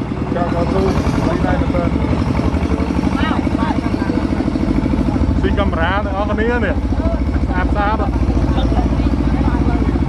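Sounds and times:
tractor engine chugging: 0:00.0 - 0:10.0
voices: 0:00.0 - 0:10.0.

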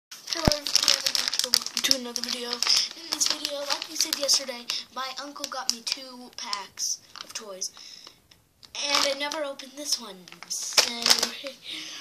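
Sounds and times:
plastic bag crinkling: 0:00.1 - 0:11.9.

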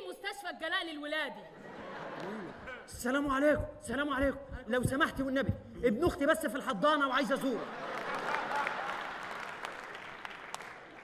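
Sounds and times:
audience applauding: 0:07.6 - 0:11.0.

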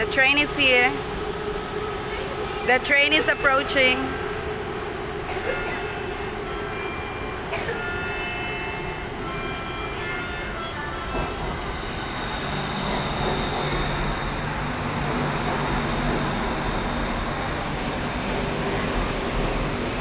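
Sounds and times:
train running rumble: 0:00.0 - 0:20.0.

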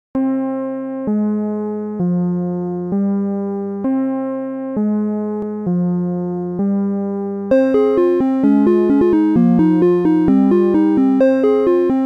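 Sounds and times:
synthesised electric piano notes: 0:00.2 - 0:12.0.

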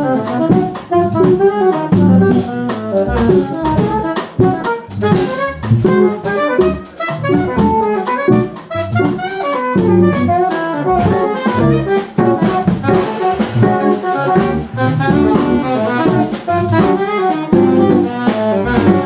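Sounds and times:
alto saxophone: 0:00.0 - 0:19.0
drum kit with cymbals: 0:00.0 - 0:19.0
electric keyboards: 0:00.0 - 0:19.0.

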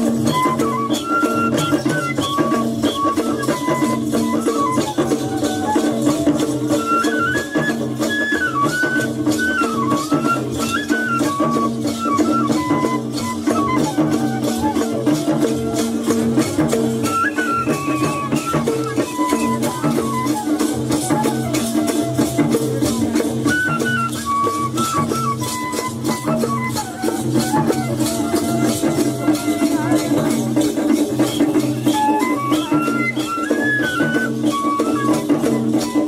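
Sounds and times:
fast rattling or jingling: 0:00.0 - 0:36.0
high ornamented folk melody: 0:00.0 - 0:36.0
repeating drum beat: 0:09.1 - 0:33.4.

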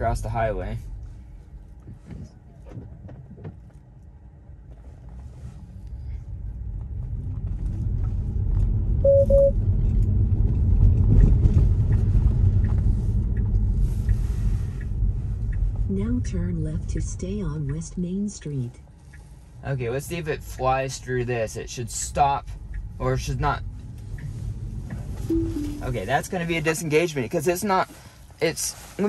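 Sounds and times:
car double beep: 0:09.0 - 0:09.6, 0:25.3 - 0:26.0.

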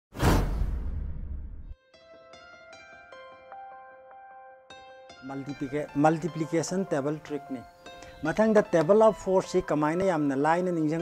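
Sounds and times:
whoosh and hit sound effect: 0:00.1 - 0:01.7.

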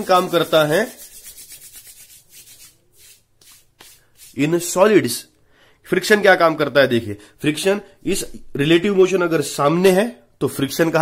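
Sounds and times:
hands rubbing together: 0:00.0 - 0:04.7.

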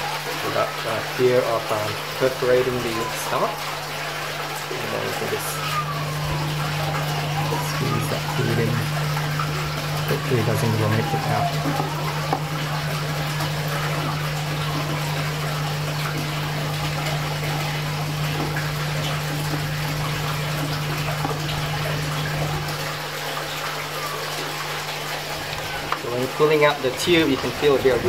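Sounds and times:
low pump hum: 0:00.0 - 0:28.0
running water: 0:00.0 - 0:28.0.

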